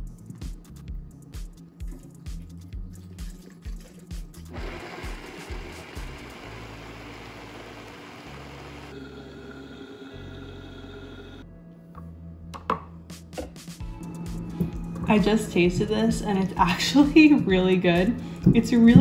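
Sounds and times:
background music with steady beat: 0.0s - 6.4s, 11.4s - 19.0s
blender running: 4.5s - 11.4s.

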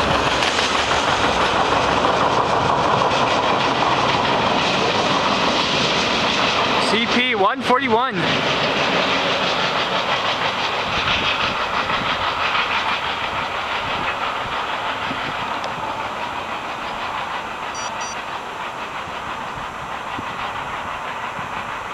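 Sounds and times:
freight train rumbling on rails: 0.0s - 21.9s.

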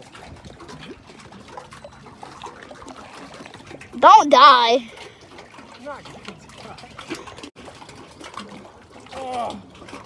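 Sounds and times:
small water splashes: 0.0s - 10.0s
water trickling and lapping: 0.0s - 10.0s.

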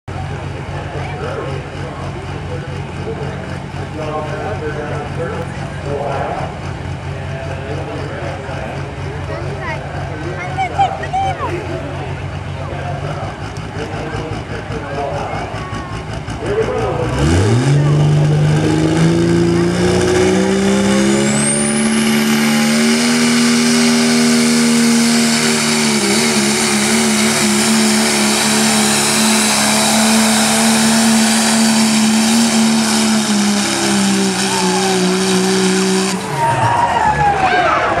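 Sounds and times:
truck engine revving at high rpm: 0.1s - 38.0s.

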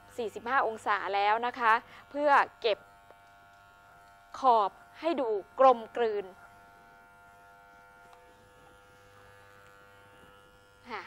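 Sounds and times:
electric hair clippers buzzing: 0.0s - 11.0s.

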